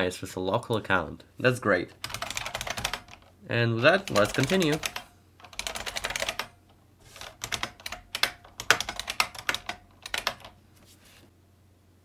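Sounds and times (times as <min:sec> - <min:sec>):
computer keyboard typing: 0:02.0 - 0:03.3, 0:03.9 - 0:10.6.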